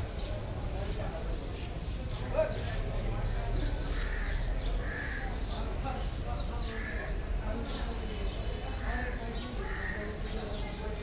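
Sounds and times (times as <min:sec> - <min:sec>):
distant chatter of people: 0:00.0 - 0:11.0
crows cawing: 0:03.9 - 0:05.4, 0:09.6 - 0:10.1.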